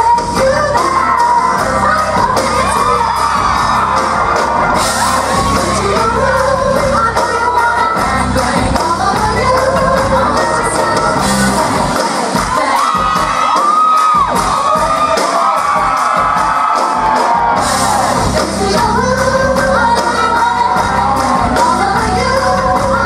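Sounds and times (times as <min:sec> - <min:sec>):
women singing into microphones: 0:00.0 - 0:03.9, 0:05.2 - 0:13.5, 0:18.2 - 0:23.0
live pop-rock band: 0:00.0 - 0:23.0
audience shouts and whoops: 0:00.7 - 0:06.5, 0:12.3 - 0:18.8, 0:20.0 - 0:23.0.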